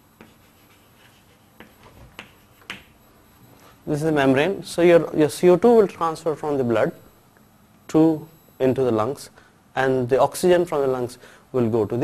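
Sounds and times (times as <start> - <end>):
pen tapping on a surface: 1.6 - 2.9.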